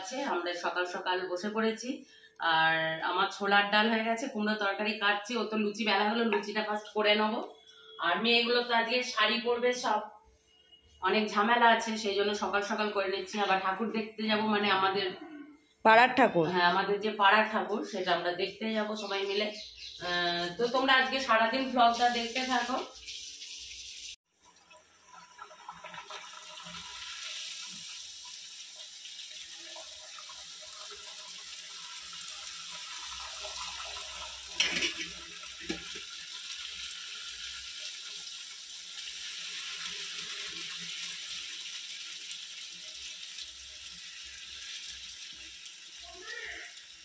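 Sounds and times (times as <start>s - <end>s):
oil sizzling and bubbling: 19.0s - 47.0s.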